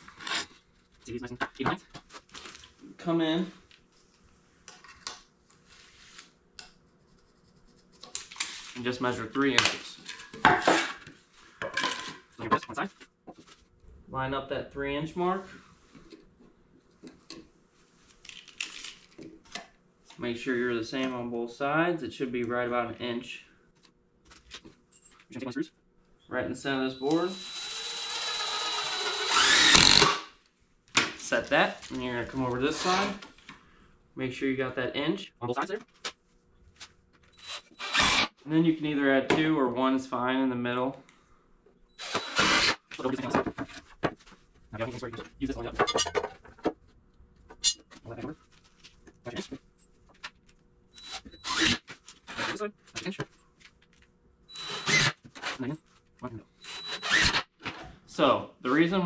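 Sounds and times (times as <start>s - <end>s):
cordless drill motor whine: 26.6s - 30.2s, 37.3s - 38.3s, 42.0s - 42.8s, 51.0s - 51.8s, 54.5s - 55.2s, 56.6s - 57.5s
screw gun driving screws: 26.7s - 30.3s, 37.4s - 38.3s, 42.0s - 42.8s, 54.6s - 55.6s, 56.6s - 57.5s.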